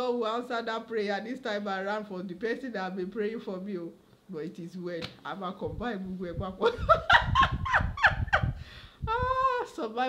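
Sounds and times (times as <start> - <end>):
woman laughing: 6.6 - 9.7.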